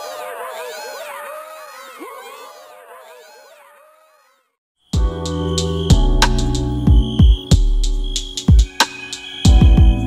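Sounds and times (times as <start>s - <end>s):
film music: 5.0s - 10.0s.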